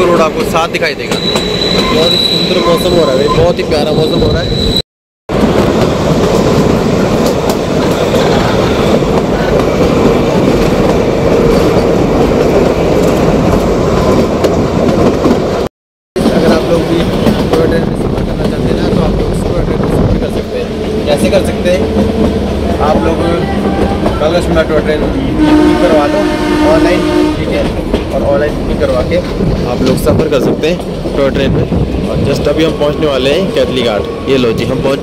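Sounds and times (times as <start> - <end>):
train wheels rumbling on rail: 0.0 - 35.0.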